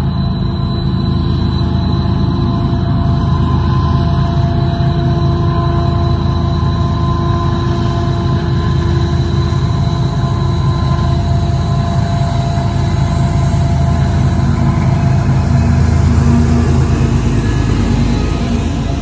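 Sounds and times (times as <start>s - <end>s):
heavy locomotive engine rumble: 0.0s - 19.0s.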